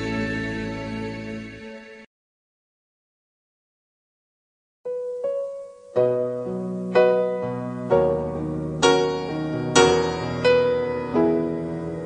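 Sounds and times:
soft piano notes: 0:04.9 - 0:12.0.

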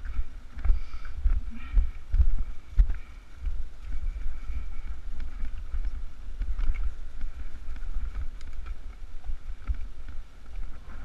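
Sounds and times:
bike rattles and clicks: 0:00.0 - 0:11.0
wind buffeting microphone: 0:00.0 - 0:11.0.

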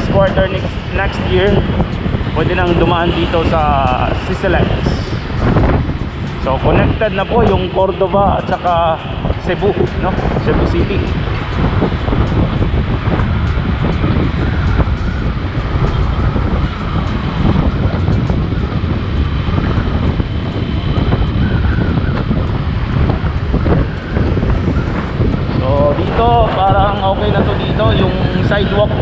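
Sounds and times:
man talking: 0:00.0 - 0:01.7, 0:02.3 - 0:05.2, 0:06.4 - 0:11.2, 0:25.5 - 0:29.0
motorcycle engine and tyres: 0:00.0 - 0:29.0
surrounding traffic: 0:00.0 - 0:29.0
wind buffeting microphone: 0:00.0 - 0:29.0.

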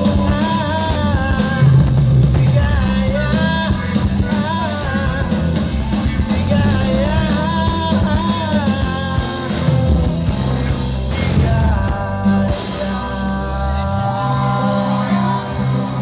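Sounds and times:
person singing: 0:00.0 - 0:16.0
rock band with guitars and drums: 0:00.0 - 0:16.0.

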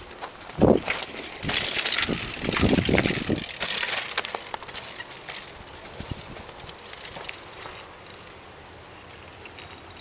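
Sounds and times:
bike tyres crunching over dirt: 0:00.0 - 0:09.9
wind rumbling on microphone: 0:00.5 - 0:03.7, 0:05.8 - 0:06.8.

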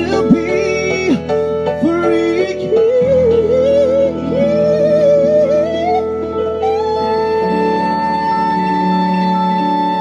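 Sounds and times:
band playing piano bass drums: 0:00.0 - 0:10.0
person singing with vibrato: 0:00.0 - 0:10.0.

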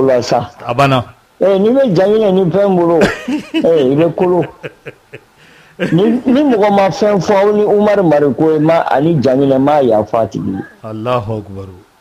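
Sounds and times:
man speaking softly: 0:05.8 - 0:11.8.

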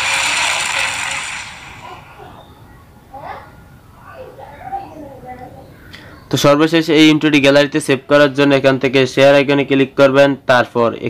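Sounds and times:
fire blast whoosh: 0:00.0 - 0:02.2.

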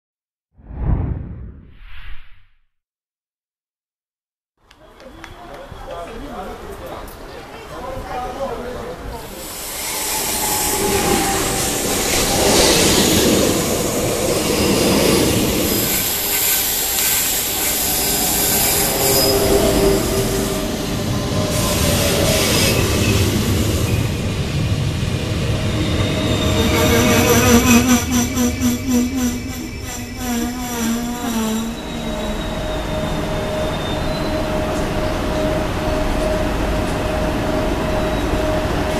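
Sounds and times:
electric train arriving: 0:04.8 - 0:38.9
train wheels and brakes squealing: 0:09.3 - 0:38.9.

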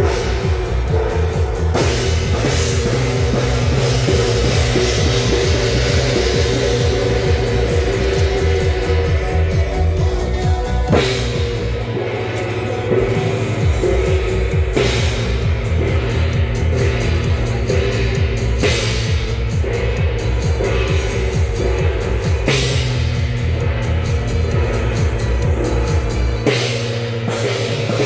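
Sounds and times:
gong crashing: 0:00.0 - 0:10.0, 0:10.9 - 0:28.0
rock music with heavy drums: 0:00.0 - 0:28.0.

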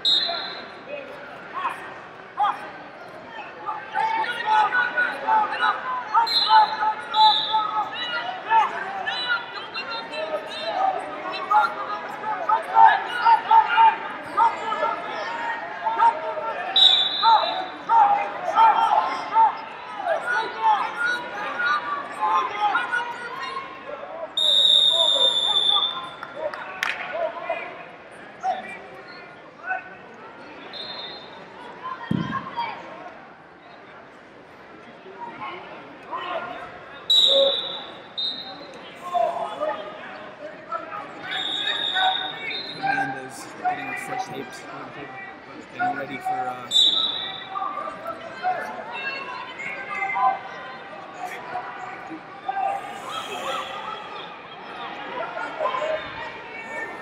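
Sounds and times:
referee whistle blasts: 0:00.0 - 0:00.7, 0:06.2 - 0:07.6, 0:16.8 - 0:17.6, 0:24.4 - 0:26.2, 0:37.1 - 0:38.8, 0:41.2 - 0:43.1, 0:46.7 - 0:47.5, 0:52.8 - 0:54.2
crowd chatter in echoing hall: 0:00.0 - 0:57.0.

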